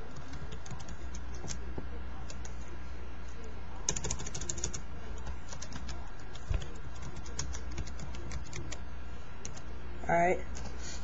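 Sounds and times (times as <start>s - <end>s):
steady low hum: 0.0s - 11.0s
typing on computer keyboard: 0.1s - 1.6s, 3.9s - 8.8s.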